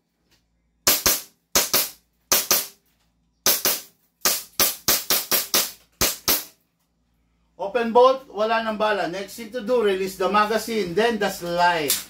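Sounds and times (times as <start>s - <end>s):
airsoft pistol shots: 0.8s - 2.8s, 3.4s - 6.5s.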